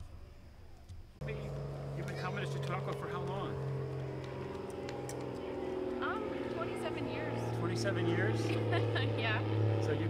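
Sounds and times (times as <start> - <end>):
low motor hum: 0.0 - 10.0.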